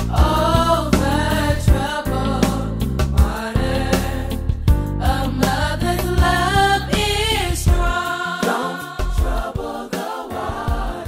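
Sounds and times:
drum beat: 0.0s - 4.1s, 6.0s - 6.7s, 7.7s - 11.0s
bass: 0.0s - 8.1s
gospel singing: 0.0s - 11.0s.

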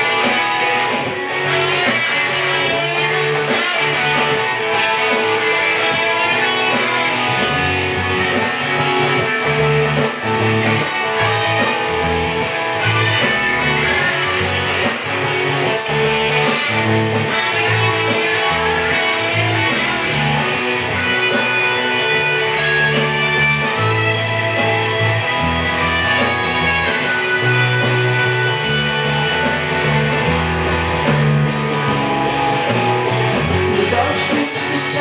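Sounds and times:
guitar playing rock chords: 0.0s - 35.0s.

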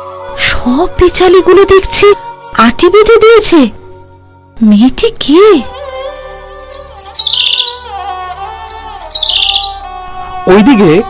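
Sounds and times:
soft music of long held notes: 0.0s - 11.0s
high bird chirping: 6.3s - 10.8s.

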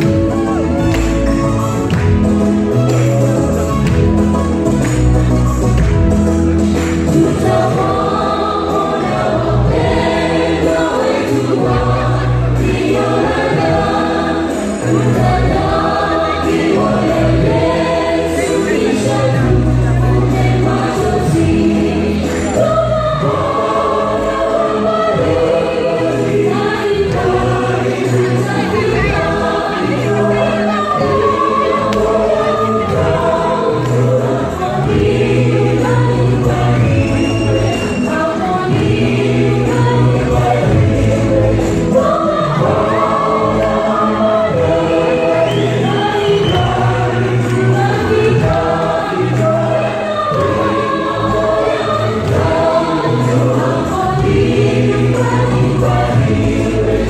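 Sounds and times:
gospel choir singing in harmony: 0.0s - 57.0s.

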